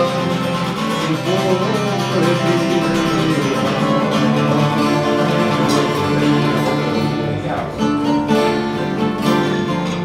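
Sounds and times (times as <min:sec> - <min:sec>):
acoustic guitar strummed: 0:00.0 - 0:10.0
lutes plucked with plectrum: 0:00.0 - 0:10.0.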